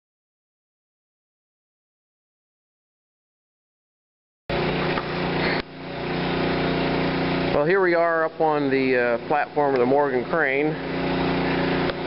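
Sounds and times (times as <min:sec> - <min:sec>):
generator engine humming: 0:04.5 - 0:12.0.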